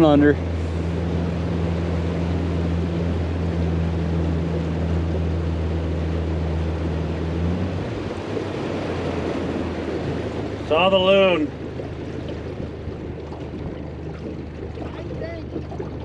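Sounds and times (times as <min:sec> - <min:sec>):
outboard motor humming: 0:00.0 - 0:16.0
water rushing along hull: 0:00.0 - 0:16.0
wind: 0:00.0 - 0:16.0.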